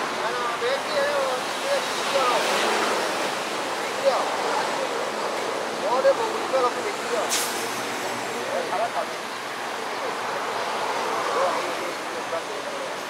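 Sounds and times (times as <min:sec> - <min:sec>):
faint voices talking: 0:00.0 - 0:13.0.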